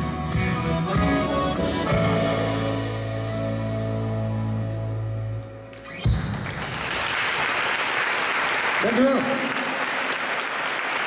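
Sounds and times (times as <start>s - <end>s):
live song: 0.0s - 11.0s
audience applause: 6.2s - 11.0s.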